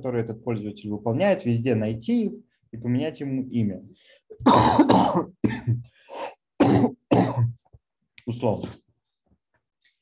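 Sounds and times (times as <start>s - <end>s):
man coughing and clearing throat: 4.3s - 7.7s.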